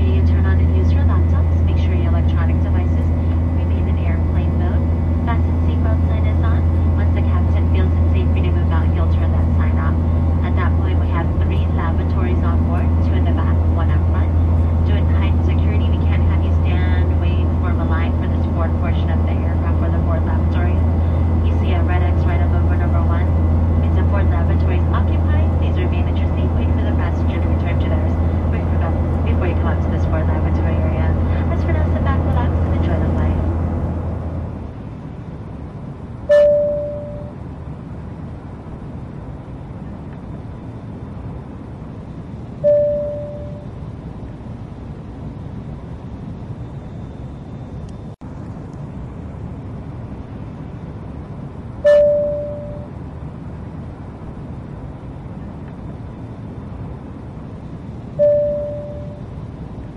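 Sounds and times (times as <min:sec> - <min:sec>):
aircraft engine drone: 0:00.0 - 0:59.9
single-tone cabin chime: 0:36.3 - 0:37.4, 0:42.6 - 0:43.8, 0:51.8 - 0:52.9, 0:58.2 - 0:59.4.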